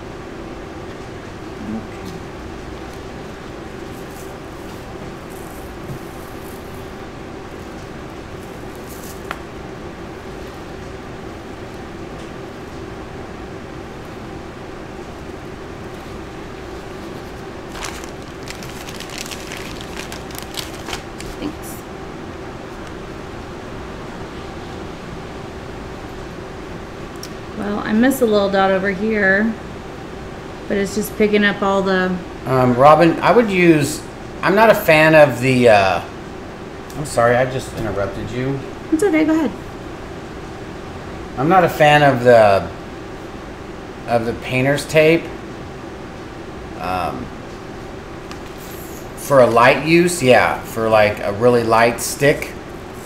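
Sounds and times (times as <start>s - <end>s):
low room hum: 0.0s - 53.0s.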